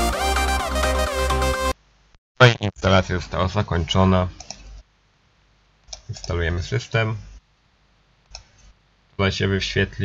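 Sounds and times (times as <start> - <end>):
person speaking: 2.4 - 3.2
computer mouse clicking: 4.4 - 4.7, 8.3 - 8.6.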